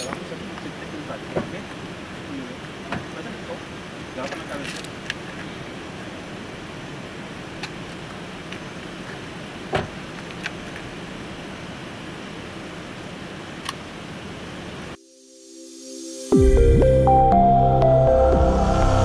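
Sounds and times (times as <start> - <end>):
outdoor background noise: 0.0 - 18.0
music intro: 15.0 - 19.0.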